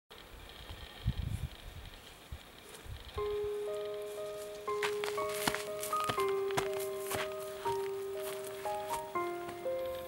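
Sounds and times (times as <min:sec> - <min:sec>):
sandal footsteps on dirt: 0:02.7 - 0:09.8
background music held notes: 0:03.2 - 0:10.0.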